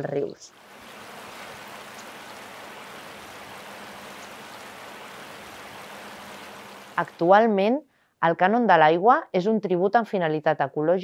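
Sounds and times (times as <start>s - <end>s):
river flowing over rocks: 0.5s - 7.0s.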